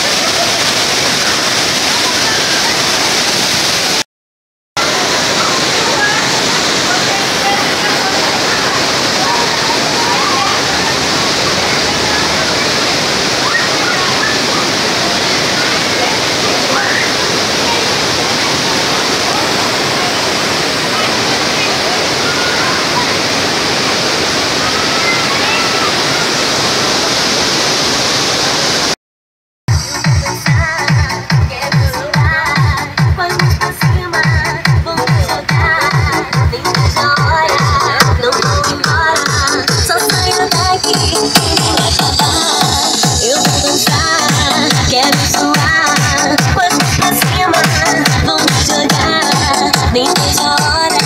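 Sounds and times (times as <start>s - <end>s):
river water rushing over weir: 0.0s - 4.0s, 4.8s - 29.0s, 34.1s - 51.0s.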